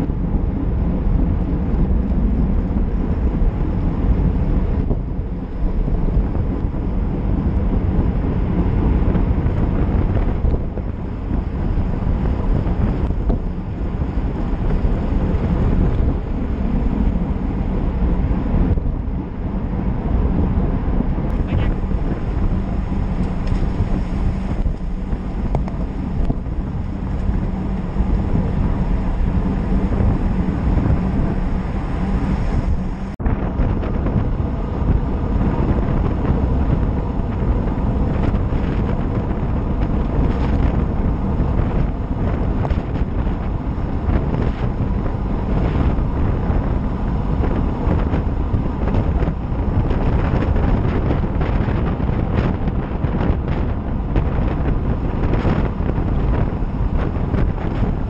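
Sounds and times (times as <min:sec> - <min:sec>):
wind buffeting microphone: 0:00.0 - 0:58.0
bike tyres on tarmac: 0:21.0 - 0:58.0.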